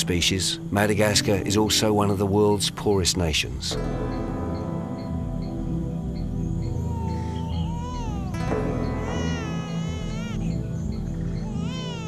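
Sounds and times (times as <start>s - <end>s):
background music: 0.0s - 12.0s
wavering high vocal calls: 6.7s - 12.0s.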